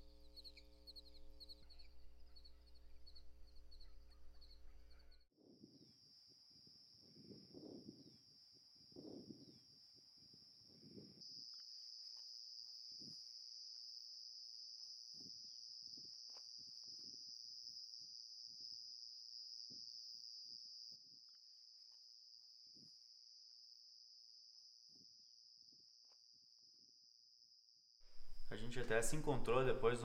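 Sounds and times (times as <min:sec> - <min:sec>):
crickets trilling: 0:00.0 - 0:30.0
soft low sounds: 0:28.1 - 0:30.0.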